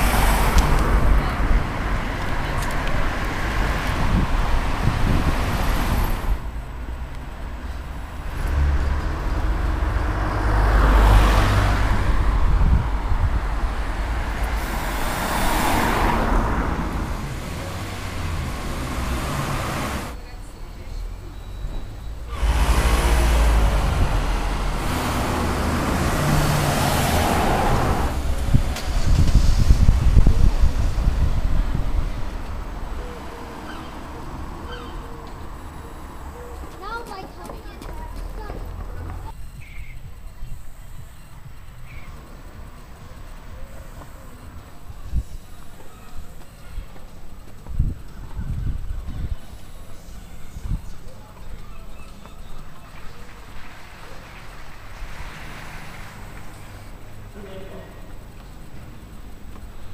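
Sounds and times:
cars passing: 0:00.0 - 0:39.6, 0:40.5 - 0:59.9
steady road noise: 0:00.0 - 0:59.9.

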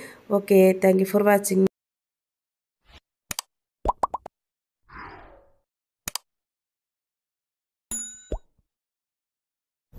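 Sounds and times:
animation click: 0:03.3 - 0:04.3, 0:06.1 - 0:06.3.

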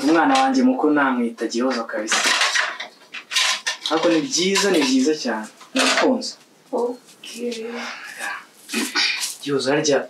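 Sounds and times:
jars and dishes clattering: 0:02.1 - 0:05.1
person speaking: 0:03.8 - 0:10.0.

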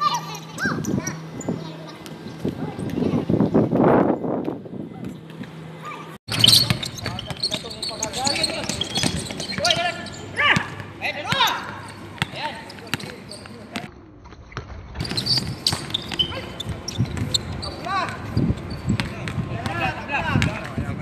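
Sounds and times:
basketball bouncing on hard court: 0:06.3 - 0:13.9, 0:15.0 - 0:19.8, 0:20.4 - 0:20.8.

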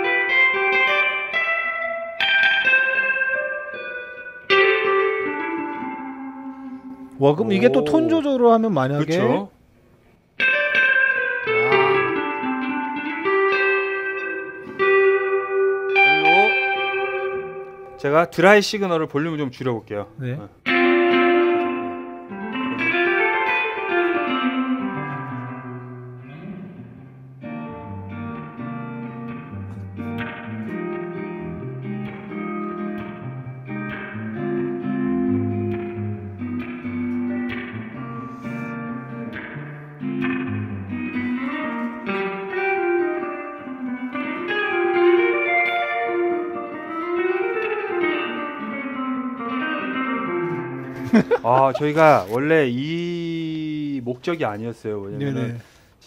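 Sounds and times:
electric guitar with spring reverb: 0:00.0 - 0:08.2, 0:10.4 - 0:18.0, 0:20.6 - 0:52.3.

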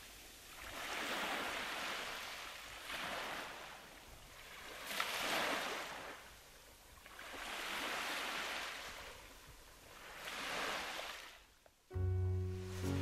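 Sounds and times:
ocean waves on sandy beach: 0:00.0 - 0:13.0.

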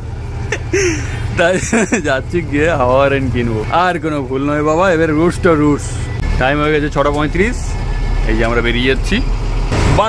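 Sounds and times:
bus diesel engine rumble: 0:00.0 - 0:10.0
people talking: 0:00.5 - 0:09.3.

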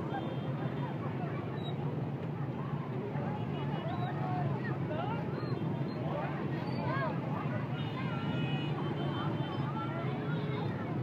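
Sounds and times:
motorbike engines in traffic: 0:00.0 - 0:11.0.

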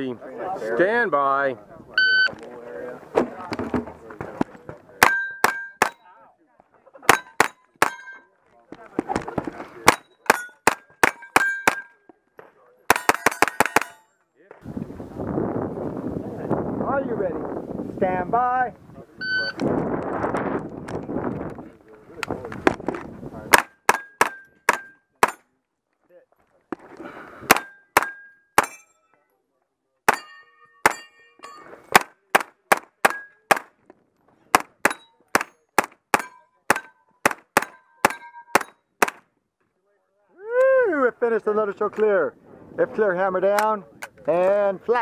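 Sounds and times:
shot timer beep: 0:02.0 - 0:02.3
steel targets clanging: 0:05.0 - 0:06.1, 0:07.0 - 0:08.3, 0:09.8 - 0:12.0, 0:12.9 - 0:14.1, 0:27.5 - 0:29.1, 0:30.1 - 0:32.0, 0:34.8 - 0:38.9.

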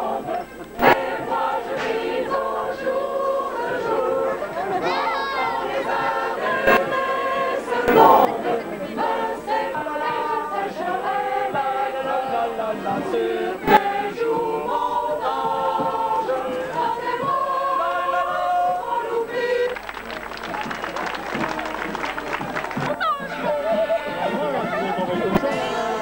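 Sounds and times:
choir singing: 0:00.0 - 0:19.9, 0:22.8 - 0:26.0.

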